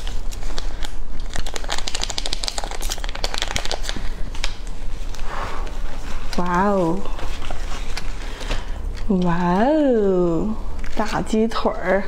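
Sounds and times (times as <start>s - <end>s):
plastic packet crackling: 0.0s - 12.0s.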